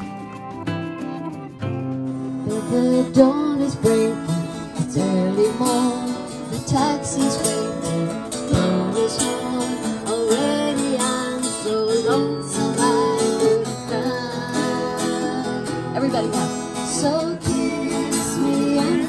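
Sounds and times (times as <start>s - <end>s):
acoustic guitar playing: 0.0s - 19.0s
woman singing: 2.4s - 19.0s.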